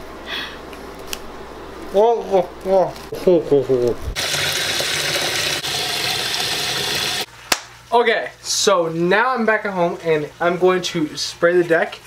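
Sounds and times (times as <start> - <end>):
tap water filling basin: 4.2 - 7.3.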